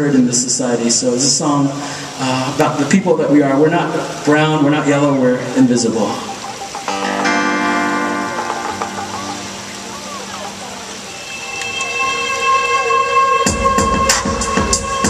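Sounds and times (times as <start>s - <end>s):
sustained synthesizer chords: 5.4s - 15.0s.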